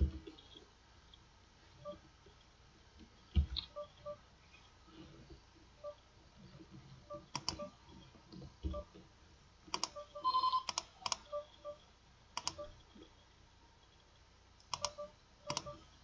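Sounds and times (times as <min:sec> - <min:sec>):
computer mouse clicks: 0:07.3 - 0:07.6, 0:09.7 - 0:10.0, 0:10.6 - 0:11.4, 0:12.4 - 0:13.0, 0:14.6 - 0:15.8
short soft beeps: 0:09.9 - 0:11.8
ringing electronic tone: 0:10.0 - 0:10.6, 0:11.3 - 0:11.8.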